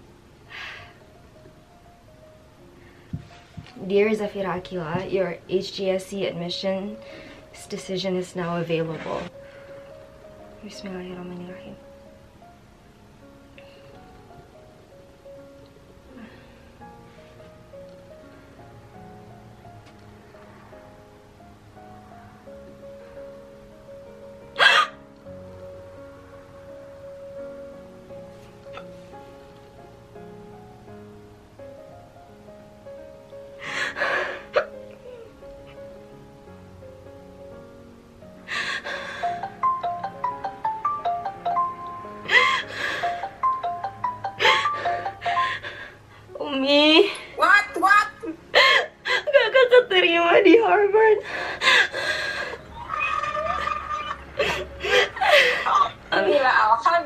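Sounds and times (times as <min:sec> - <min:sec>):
soft background music: 0:00.0 - 0:57.0
woman crying: 0:48.2 - 0:56.7
woman gasping: 0:54.4 - 0:55.9.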